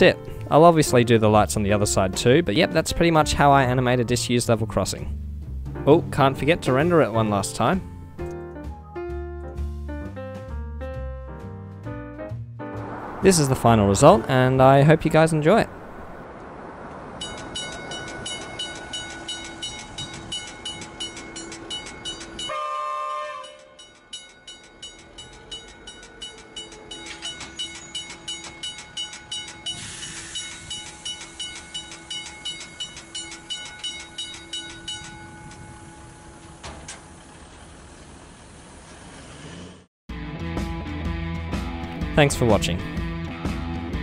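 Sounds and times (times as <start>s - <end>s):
level crossing bell ringing: 17.2s - 36.6s.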